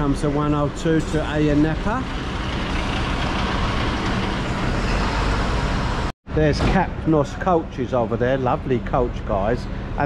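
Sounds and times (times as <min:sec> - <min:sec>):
bus driving by: 0:00.0 - 0:06.1.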